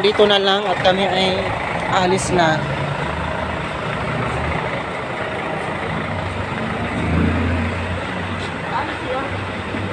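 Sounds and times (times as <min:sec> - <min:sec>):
city street traffic: 0:00.0 - 0:09.9
vehicle engine running nearby: 0:00.0 - 0:09.9.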